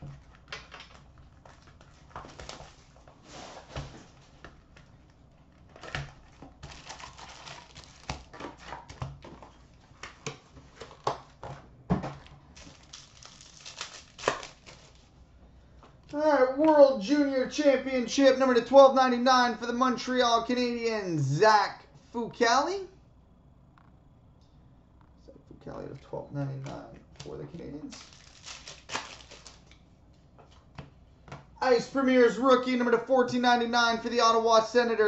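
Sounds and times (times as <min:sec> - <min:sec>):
card pack crinkling: 0:05.5 - 0:09.6, 0:12.5 - 0:15.1, 0:27.9 - 0:29.8.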